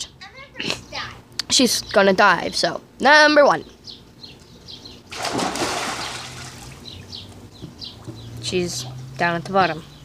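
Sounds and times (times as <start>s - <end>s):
person diving splash: 5.1s - 6.8s
churning water: 5.1s - 6.9s.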